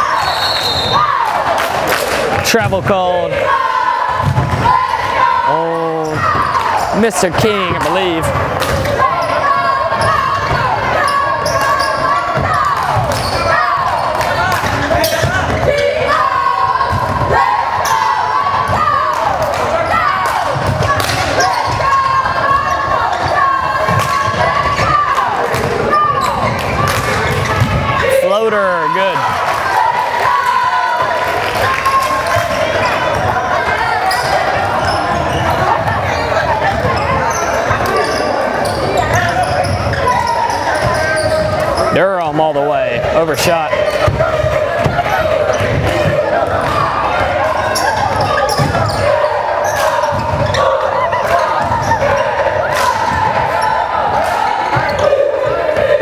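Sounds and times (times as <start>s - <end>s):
sneakers squeaking on court: 6.0s - 14.3s, 31.8s - 42.2s, 44.8s - 53.8s.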